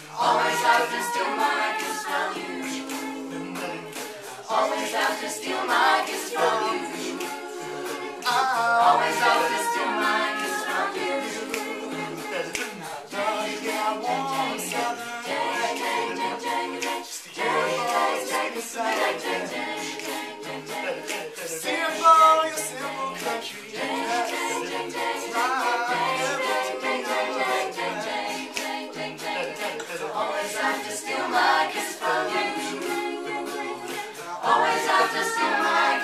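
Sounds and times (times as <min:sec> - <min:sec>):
a cappella group singing: 0:00.0 - 0:36.0
ticking beat: 0:00.0 - 0:36.0.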